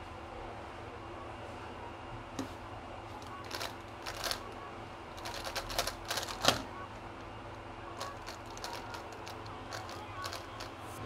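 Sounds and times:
plastic puzzle clicking: 0:03.4 - 0:04.4, 0:05.2 - 0:06.6, 0:08.0 - 0:10.7.

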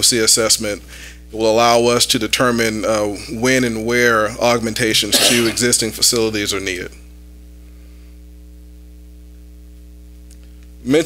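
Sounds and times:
electrical mains hum: 0:00.0 - 0:11.0
man speaking: 0:01.4 - 0:06.9.

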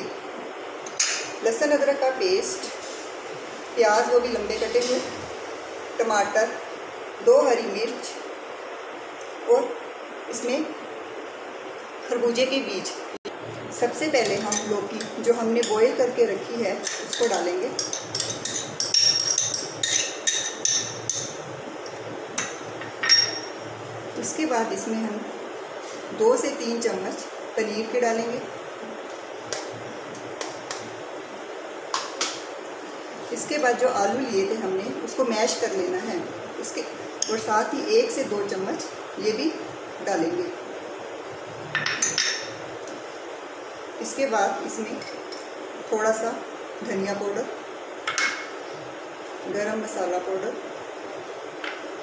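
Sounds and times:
low steady hiss: 0:00.0 - 0:52.0
spoon clinking against glass bowl: 0:16.8 - 0:21.4, 0:22.4 - 0:23.6.

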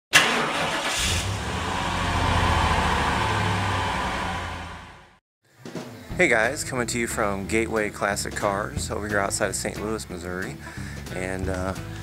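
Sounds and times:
car engine starting and running: 0:00.1 - 0:05.2.

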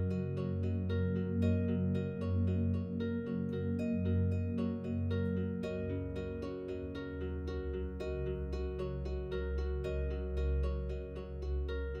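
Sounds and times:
low sustained tone: 0:00.0 - 0:12.0
plucked instrumental music: 0:00.0 - 0:12.0.

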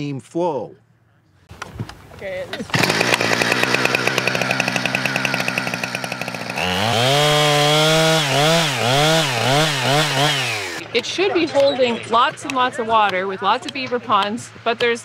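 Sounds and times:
chainsaw cutting into log: 0:02.7 - 0:10.8.

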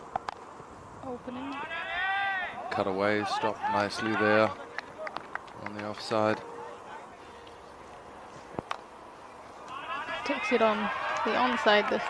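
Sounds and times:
open field ambience: 0:00.0 - 0:12.0.

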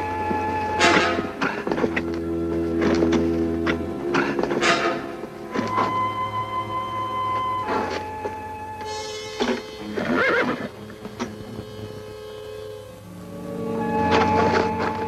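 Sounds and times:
music of long held notes: 0:00.0 - 0:15.0
horse whinnying: 0:09.8 - 0:11.3.

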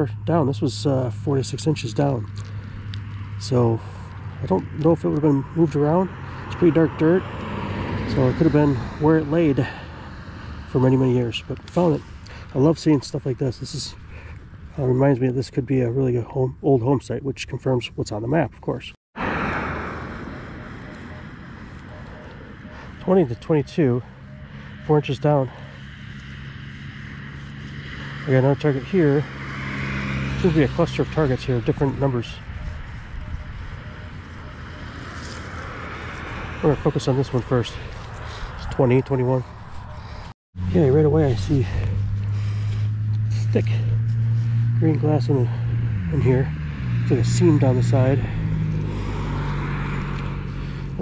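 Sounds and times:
low engine drone: 0:00.0 - 0:16.3, 0:19.2 - 0:51.0.

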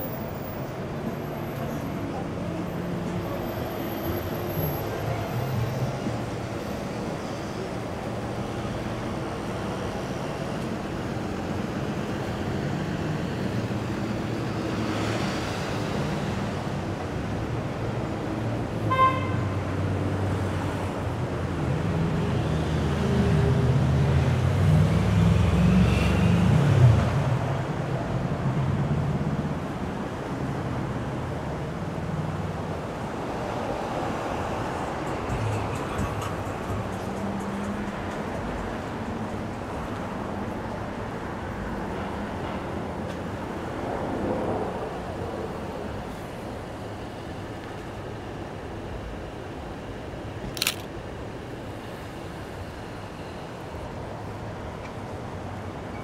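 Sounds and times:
city street traffic: 0:00.0 - 0:56.0
car horn toot: 0:18.9 - 0:19.5.

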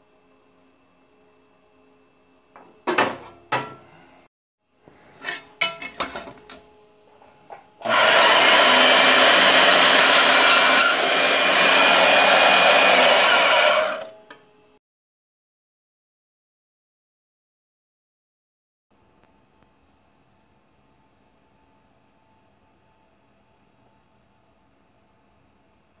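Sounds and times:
bandsaw running: 0:07.8 - 0:14.2.

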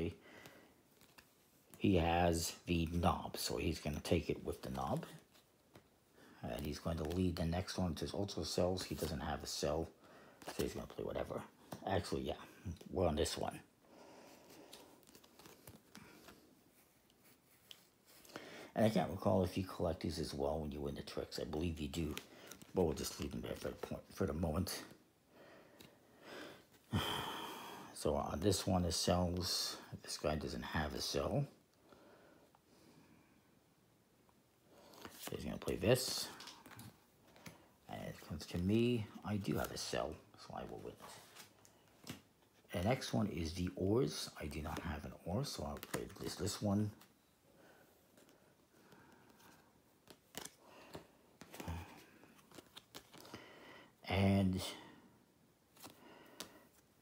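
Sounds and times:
playing cards clicking and snapping: 0:50.0 - 0:53.4.

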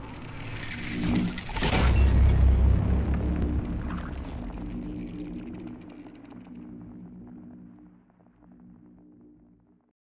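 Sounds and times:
steady low drone: 0:00.0 - 0:09.9
deep boom: 0:01.9 - 0:05.8.

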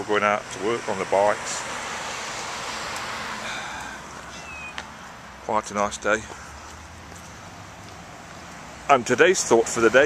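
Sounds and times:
car tyres on road: 0:00.0 - 0:10.0.

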